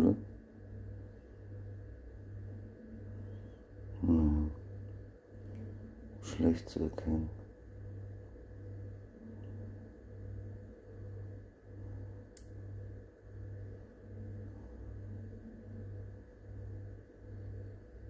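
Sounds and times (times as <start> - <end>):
pulsing low hum: 0.0 - 18.0
sharp click: 12.3 - 12.6.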